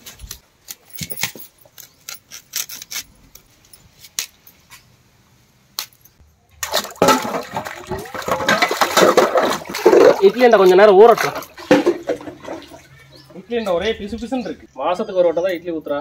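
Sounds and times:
water sloshing and splashing: 6.6 - 13.5.

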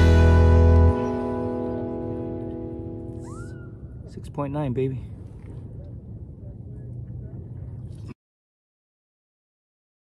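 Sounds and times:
low outdoor rumble: 0.0 - 8.2.

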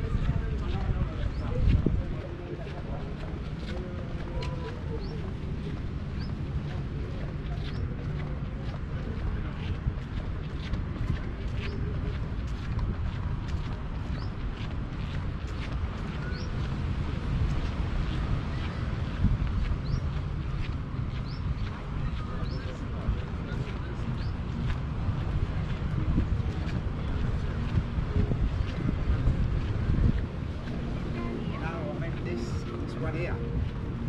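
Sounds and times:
wind buffeting microphone: 0.0 - 34.0
small birds chirping: 14.0 - 14.4, 16.2 - 16.7, 18.1 - 22.8, 24.1 - 24.7.

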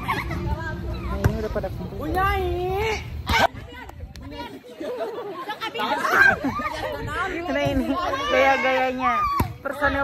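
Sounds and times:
people chattering: 0.0 - 10.0
people laughing: 4.4 - 8.0.

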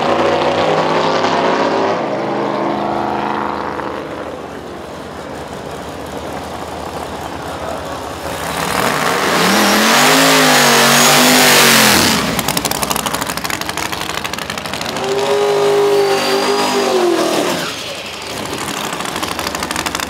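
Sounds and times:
car engine revving and idling: 0.0 - 20.0.

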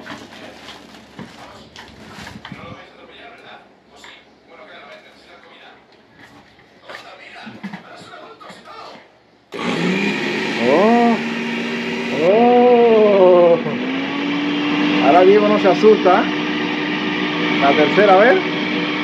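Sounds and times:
blender motor whirring: 9.5 - 19.0
person calling out: 12.1 - 13.8.

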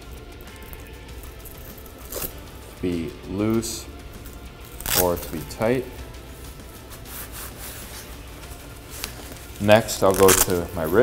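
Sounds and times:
glove padding rubbing and rustling: 0.0 - 11.0.

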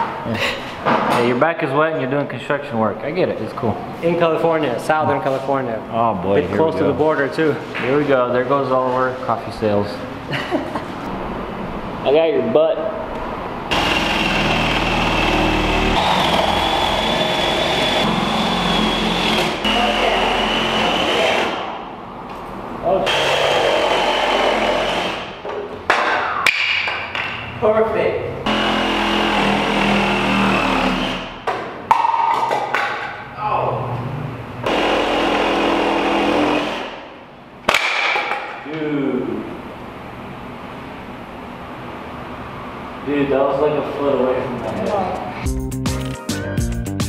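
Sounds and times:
power saw cutting plywood: 13.7 - 21.6, 23.0 - 25.3, 28.5 - 31.4, 34.7 - 37.0.

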